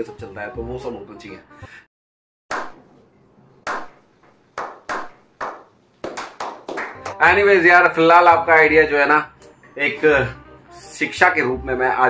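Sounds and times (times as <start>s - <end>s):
hand clapping: 2.5s - 2.8s, 3.7s - 7.3s.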